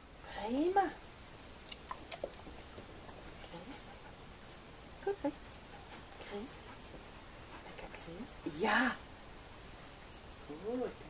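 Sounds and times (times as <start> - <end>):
dog chewing with faint crunching: 1.4 - 8.6.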